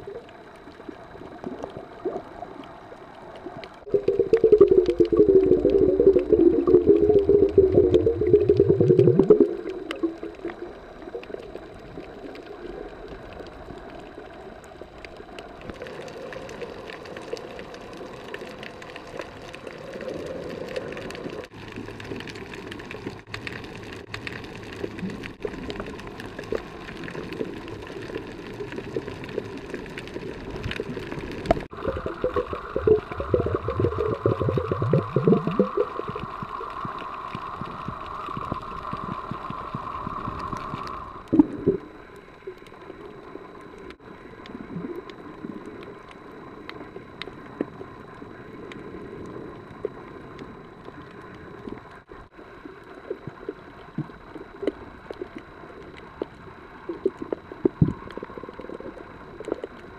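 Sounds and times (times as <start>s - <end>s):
muffled underwater water noise: 0.0s - 59.9s
underwater bubbling: 0.0s - 59.9s.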